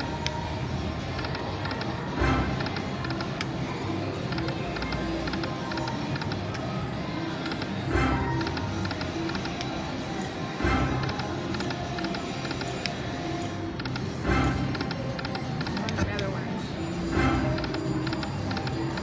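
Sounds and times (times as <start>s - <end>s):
casino chatter: 0.0s - 19.0s.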